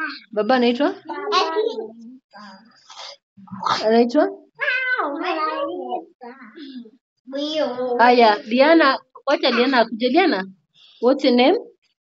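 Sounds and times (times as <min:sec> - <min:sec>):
girl's high-pitched vocal sound: 0:04.6 - 0:06.6.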